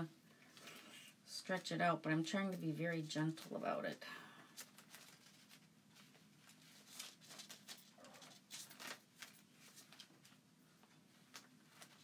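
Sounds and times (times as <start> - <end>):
transfer sheet rustling and crinkling: 1.5 - 12.0.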